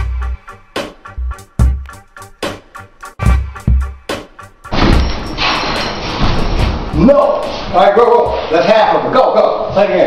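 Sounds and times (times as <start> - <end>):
rustling and thumps of people moving: 4.7 - 8.8.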